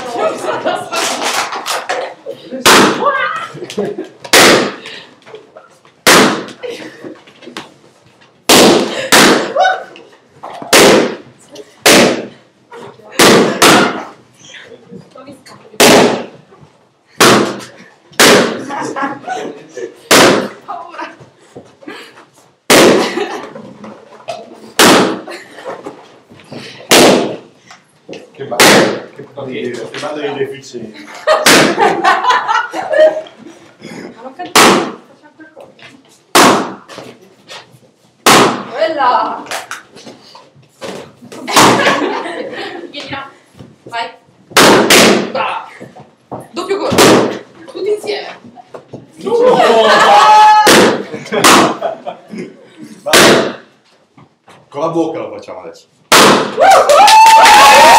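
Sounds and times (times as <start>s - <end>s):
balloons popping: 2.6s - 3.1s, 4.2s - 4.9s, 6.0s - 6.6s, 8.4s - 9.6s, 10.5s - 12.4s, 13.2s - 14.2s, 15.8s - 16.4s, 17.2s - 18.7s, 20.1s - 20.6s, 22.6s - 23.2s, 24.7s - 25.3s, 26.9s - 27.6s, 28.5s - 29.1s, 31.4s - 31.9s, 34.5s - 35.1s, 36.3s - 37.0s, 38.2s - 38.8s, 40.8s - 42.1s, 44.5s - 45.5s, 46.8s - 47.5s, 50.5s - 51.8s, 53.1s - 53.8s, 56.1s - 56.6s.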